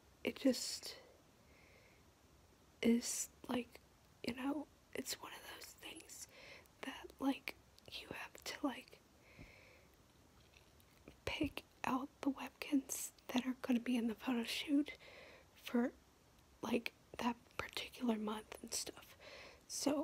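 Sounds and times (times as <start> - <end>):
person whispering: 2.8 - 9.0, 11.1 - 15.0.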